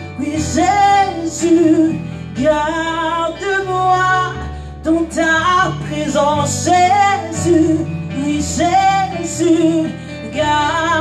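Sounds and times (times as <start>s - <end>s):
instrumental backing with bass: 0.0s - 11.0s
woman singing: 0.0s - 11.0s.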